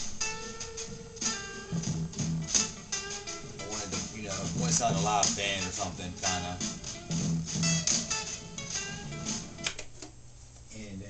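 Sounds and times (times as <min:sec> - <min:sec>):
drum beat: 0:00.0 - 0:09.6
plucked guitar-like melody: 0:00.2 - 0:09.8.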